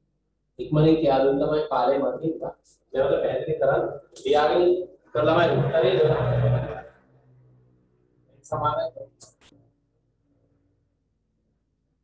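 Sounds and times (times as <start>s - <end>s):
faint low hum: 0.0s - 12.0s
man talking: 0.6s - 6.9s, 8.5s - 9.3s.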